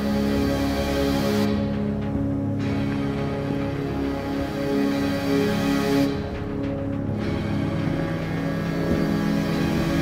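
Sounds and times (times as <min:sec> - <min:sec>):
low horror score drone: 0:00.0 - 0:10.0.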